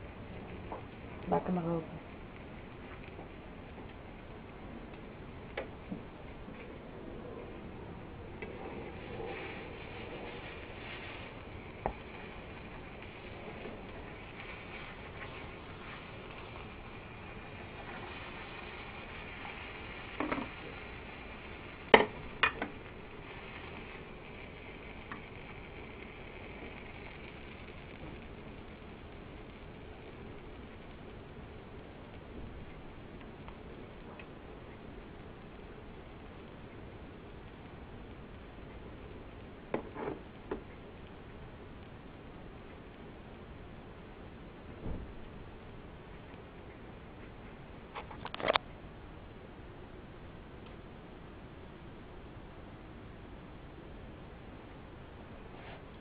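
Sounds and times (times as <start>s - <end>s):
omelette sizzling in frying pan: 0.0s - 56.0s.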